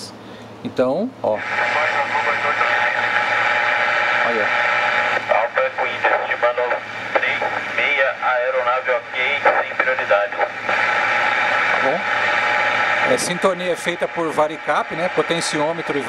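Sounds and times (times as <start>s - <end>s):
radio hiss: 1.3s - 16.0s
radio voice transmissions: 1.3s - 16.0s.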